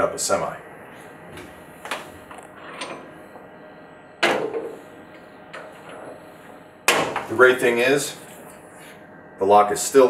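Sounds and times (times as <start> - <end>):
faint machine hum: 0.0 - 10.0.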